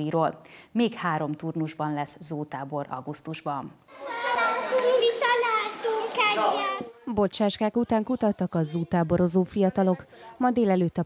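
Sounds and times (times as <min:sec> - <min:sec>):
children talking and calling out: 0:03.9 - 0:07.0.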